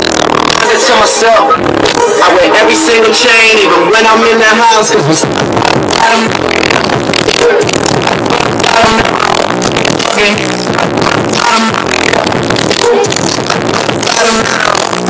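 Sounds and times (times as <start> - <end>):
loud hip-hop over loudspeakers: 0.0 - 15.0.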